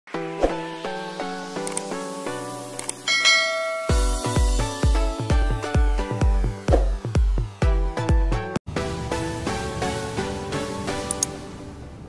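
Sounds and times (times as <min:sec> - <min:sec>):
light background music: 0:00.1 - 0:12.0
bell ding: 0:03.1 - 0:04.4
electronic beat with bass kicks: 0:03.8 - 0:08.6.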